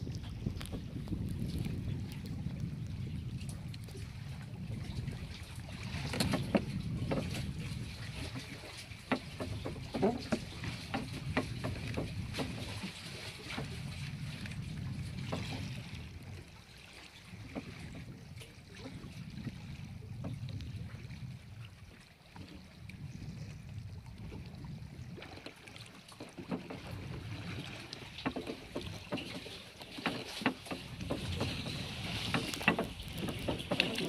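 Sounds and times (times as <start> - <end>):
wind and water rumble: 0.0 - 34.0
sharp knocks and clicks: 9.1 - 12.5, 28.2 - 34.0.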